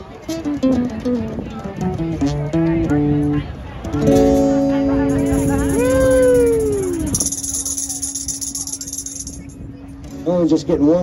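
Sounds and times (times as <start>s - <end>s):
acoustic guitar chord: 0.3s - 7.1s.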